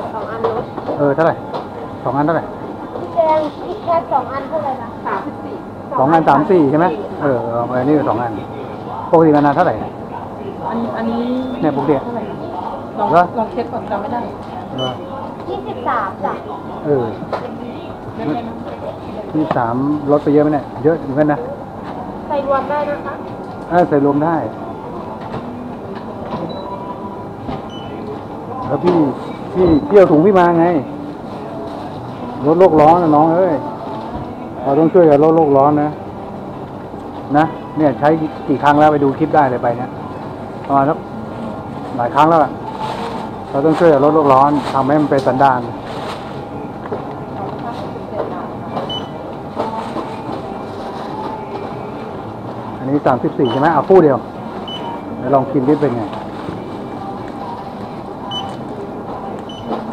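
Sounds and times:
faint voices: 0.0 - 59.9
steady store hum: 0.0 - 59.9
barcode scanner beeps: 14.7 - 15.0, 27.7 - 28.0, 48.8 - 49.2, 53.4 - 53.8, 54.6 - 55.2, 58.3 - 58.7, 59.4 - 59.9
short high beep: 14.8 - 15.0
goods and plastic bags handled: 41.4 - 48.3, 49.6 - 52.2, 55.5 - 59.9
plastic bag rustling: 41.7 - 46.5.

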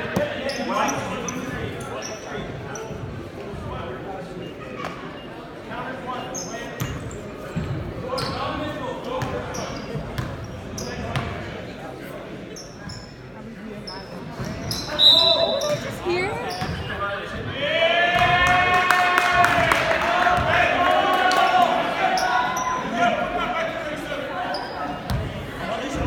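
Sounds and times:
spectators chatter echoing: 0.0 - 26.0
shoe squeaks and knocks: 13.9 - 17.0.

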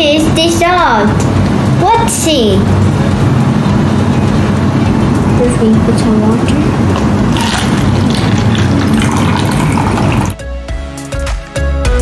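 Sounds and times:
water pouring into plastic cup: 7.3 - 10.4.

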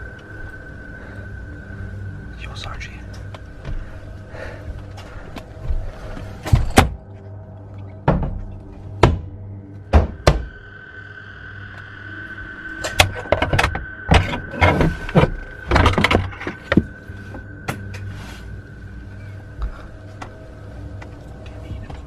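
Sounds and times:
faint high whine: 0.0 - 6.2, 8.7 - 22.0
steady low hum: 0.0 - 22.0
sharp knocks and thuds: 8.0 - 10.6.

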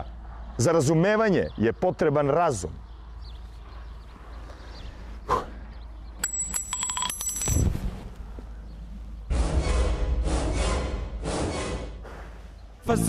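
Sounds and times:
rapid metallic ringing: 6.2 - 7.7.

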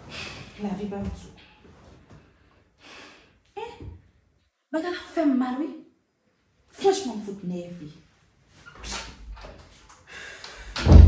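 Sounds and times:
person breathing sharply: 2.8 - 3.4, 10.1 - 10.8.

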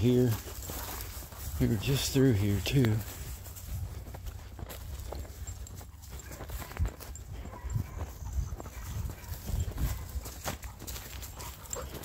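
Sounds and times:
footsteps on rough ground: 0.0 - 12.0.

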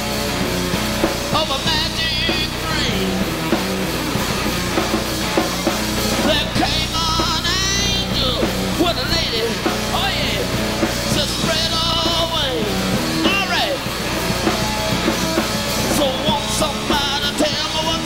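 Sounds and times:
bending lead guitar: 0.0 - 18.0
live hard rock band: 0.0 - 18.0.

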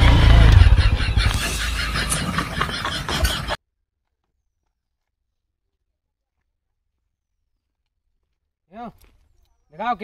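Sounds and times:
small motorcycle engine rumbling: 0.0 - 3.6.

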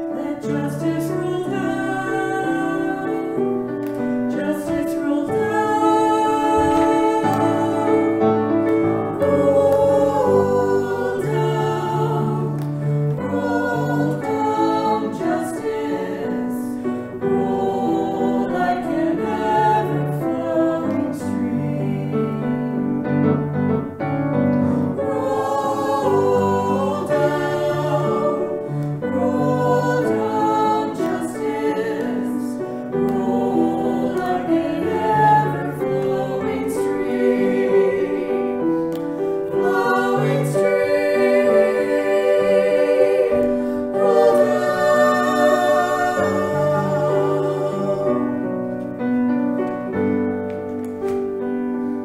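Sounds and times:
two women singing a duet: 0.0 - 23.0, 25.0 - 38.9, 39.5 - 48.4
piano accompaniment: 0.0 - 52.0.

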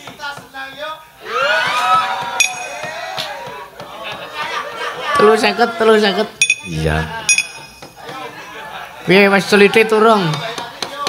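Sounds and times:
person making vocal sounds: 6.7 - 7.2.

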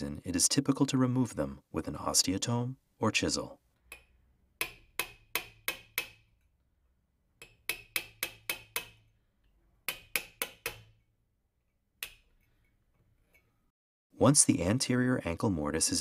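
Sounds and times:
mallet tapping chisel: 3.8 - 6.5, 7.4 - 11.1, 12.0 - 12.4.

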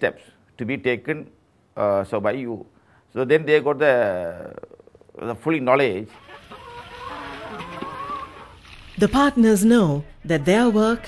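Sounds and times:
chicken drawn-out call: 6.1 - 9.0
chickens clucking: 6.1 - 9.0.

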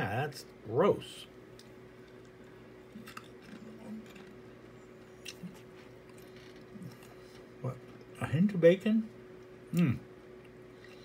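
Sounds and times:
faint hum: 0.0 - 11.0
potato crisp crunching: 1.5 - 4.4.

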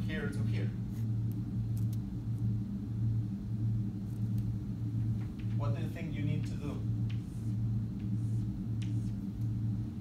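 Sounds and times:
room machinery hum: 0.0 - 10.0.

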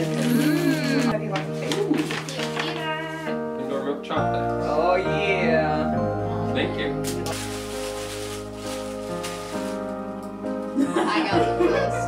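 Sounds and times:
tissue paper crinkling: 0.0 - 3.0, 7.0 - 10.2
background music with held notes: 0.0 - 12.0.

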